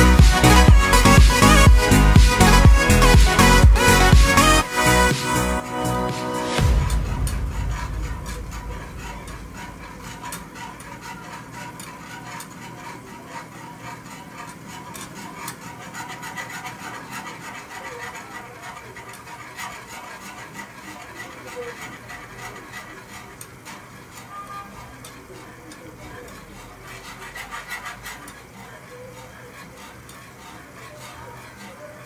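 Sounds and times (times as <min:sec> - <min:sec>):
whisk scraping a saucepan: 0:00.0 - 0:32.0.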